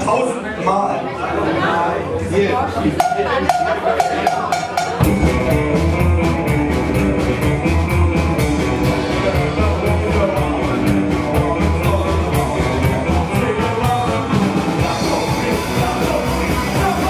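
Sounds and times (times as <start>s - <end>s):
rock and roll band playing: 3.0s - 17.0s.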